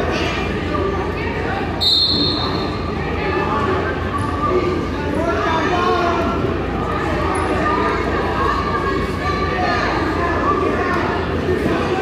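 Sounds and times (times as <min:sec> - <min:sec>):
spectators chattering: 0:00.0 - 0:12.0
short high whistle blast: 0:01.8 - 0:02.6.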